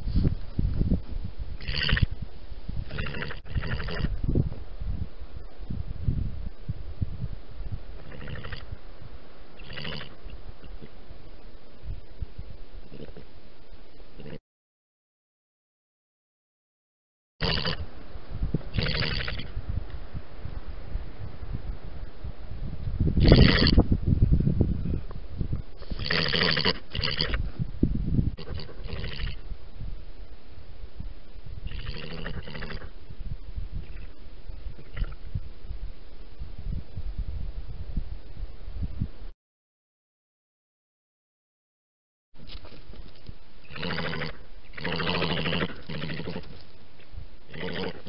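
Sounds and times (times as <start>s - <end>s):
scuffling and rustling in earth: 0.0s - 1.5s, 42.4s - 43.6s.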